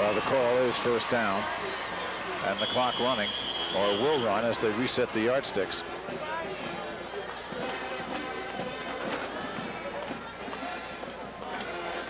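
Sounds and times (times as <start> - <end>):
music playing in stands: 0.0 - 12.0
stadium crowd murmur: 0.0 - 12.0.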